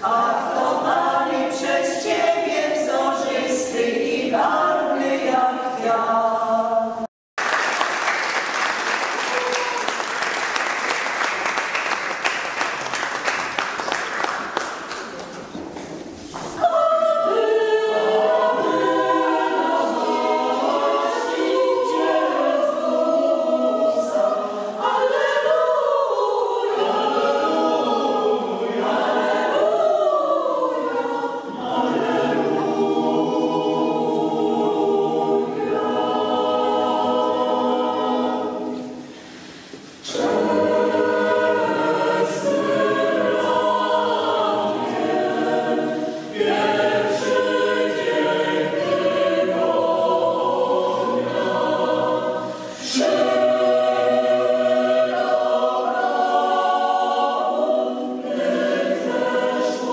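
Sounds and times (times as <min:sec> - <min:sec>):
women's vocal group singing: 0:00.0 - 0:07.1, 0:16.2 - 0:59.9
mixed choir singing: 0:00.0 - 0:14.7, 0:16.2 - 0:59.9
applause: 0:07.4 - 0:15.6.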